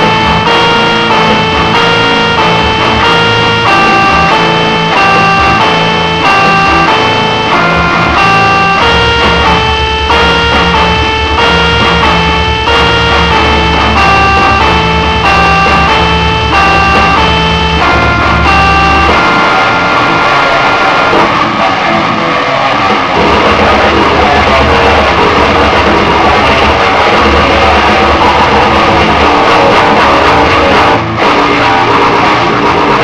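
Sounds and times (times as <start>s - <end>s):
short melodic notes: 0.0s - 21.5s
distorted guitars and drums: 0.0s - 33.0s
steady low bass: 0.0s - 33.0s.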